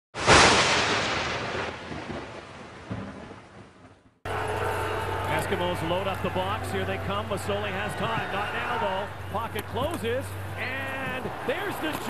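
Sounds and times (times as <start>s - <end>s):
thunderclap: 0.2s - 4.2s.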